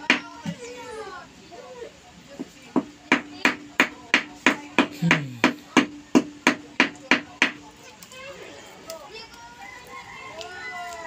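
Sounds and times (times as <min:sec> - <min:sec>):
stick knocking on ceramic tile: 0:02.4 - 0:07.6.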